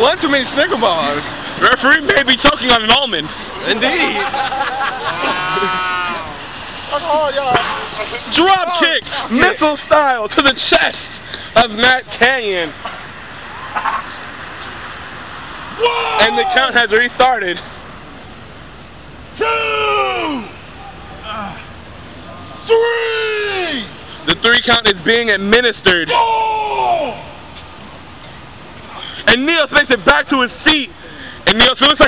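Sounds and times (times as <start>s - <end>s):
person shouting: 5.1s - 6.4s, 15.8s - 16.8s, 19.4s - 20.6s, 21.2s - 21.7s, 22.6s - 23.9s, 26.1s - 27.3s.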